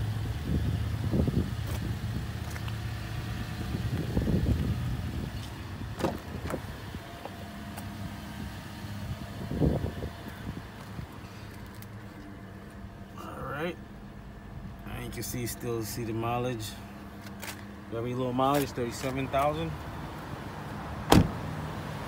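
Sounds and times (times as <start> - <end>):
car door latch click: 21.1 - 21.4.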